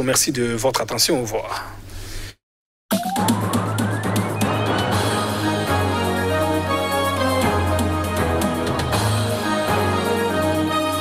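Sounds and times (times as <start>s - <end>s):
synthesised tone sweeping upward: 2.9s - 7.2s.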